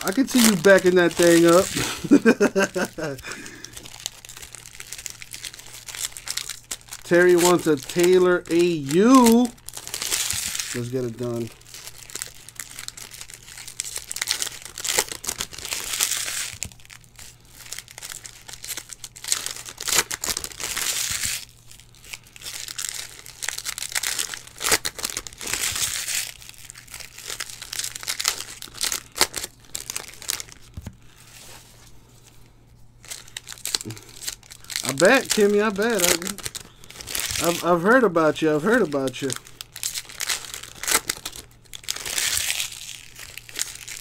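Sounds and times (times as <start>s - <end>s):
plastic wrappers crinkling and tearing: 0.0s - 44.0s.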